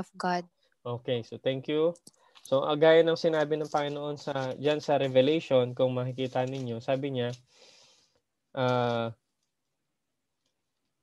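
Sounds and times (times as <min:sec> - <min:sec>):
man saying uh: 0:08.6 - 0:09.1.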